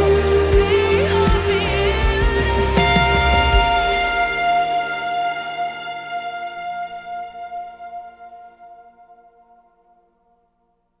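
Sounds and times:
electric guitar chord ringing: 0:00.0 - 0:10.3.

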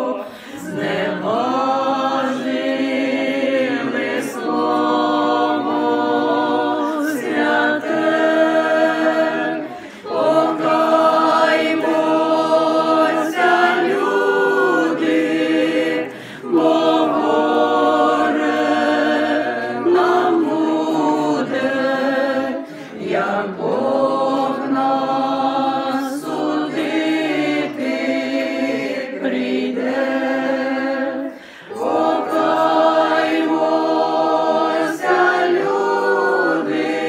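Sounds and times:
group singing unaccompanied: 0:00.0 - 0:37.0.

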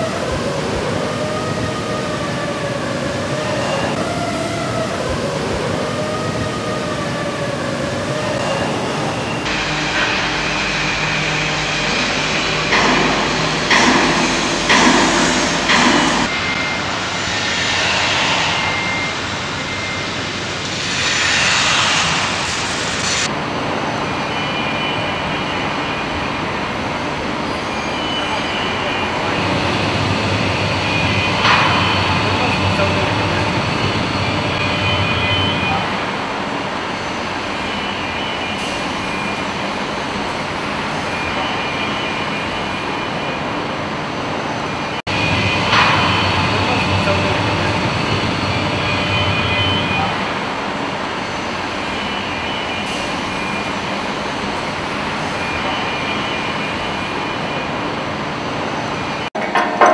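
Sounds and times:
machinery hum: 0:00.0 - 0:59.9
knocks and clanks: 0:09.4 - 0:16.9, 0:30.0 - 0:34.6, 0:59.4 - 0:59.9
rushes of noise: 0:09.4 - 0:35.3.

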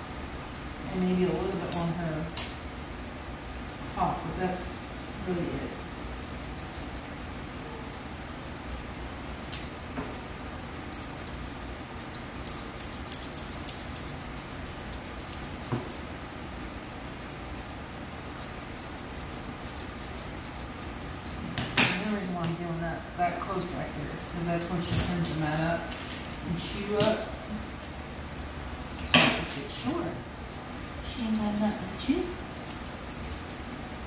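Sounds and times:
room hum: 0:00.0 - 0:34.0
shears snipping dog fur: 0:06.2 - 0:16.0, 0:18.4 - 0:21.0, 0:30.5 - 0:33.7
person speaking: 0:31.0 - 0:32.4.

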